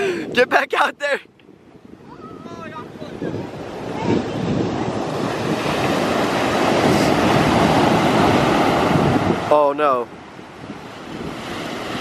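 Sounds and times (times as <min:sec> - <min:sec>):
ocean surf breaking: 0:00.0 - 0:12.0
wind buffeting microphone: 0:00.0 - 0:12.0.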